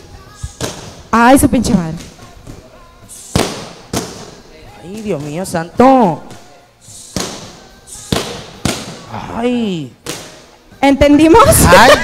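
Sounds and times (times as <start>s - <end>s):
punches smacking punch pads: 0.6s - 1.0s, 3.3s - 4.4s, 7.1s - 9.1s
woman crying out: 11.5s - 12.0s.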